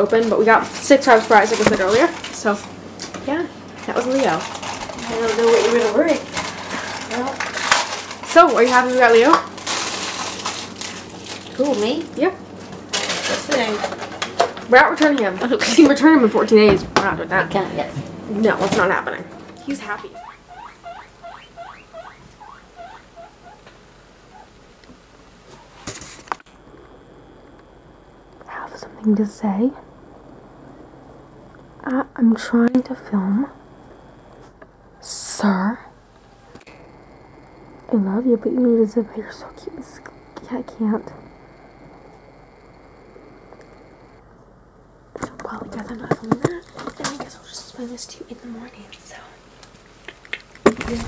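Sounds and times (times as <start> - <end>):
guinea pig squealing: 19.2 - 23.7, 24.3 - 24.6
faint ticks: 40.0 - 44.2.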